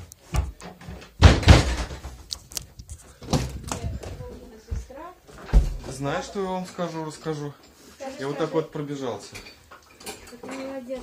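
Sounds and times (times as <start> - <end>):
door banging shut: 1.2 - 2.2.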